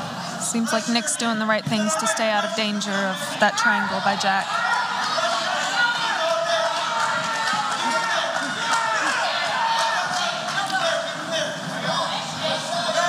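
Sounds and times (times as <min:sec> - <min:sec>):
crowd shouting and calling out: 0:00.0 - 0:13.0.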